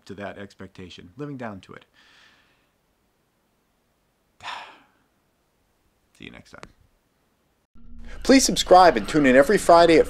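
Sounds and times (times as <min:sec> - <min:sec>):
man sighing: 0:04.4 - 0:05.1.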